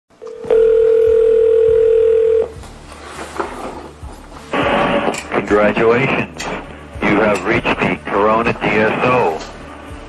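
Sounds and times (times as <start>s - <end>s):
telephone dial tone: 0.2s - 2.5s.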